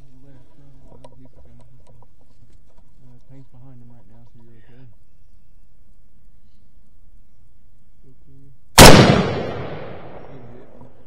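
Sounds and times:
loud gunshot with echo: 8.8 - 10.4.

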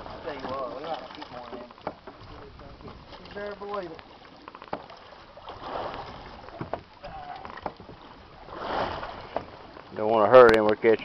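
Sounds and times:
water noise: 0.0 - 11.0
wind: 0.0 - 11.0.

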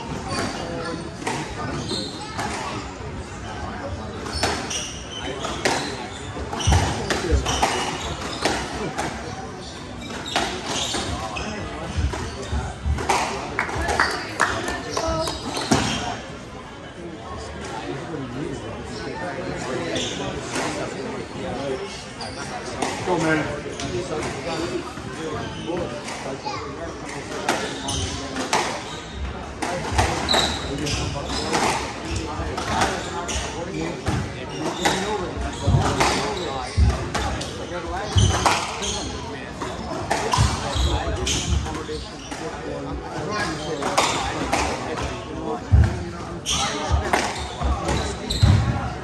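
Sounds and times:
spectators talking: 0.0 - 49.0
squash ball striking rackets and walls: 6.5 - 9.2.

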